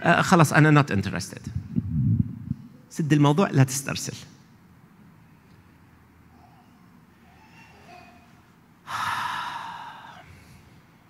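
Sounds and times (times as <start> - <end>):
man sighing: 8.9 - 10.4.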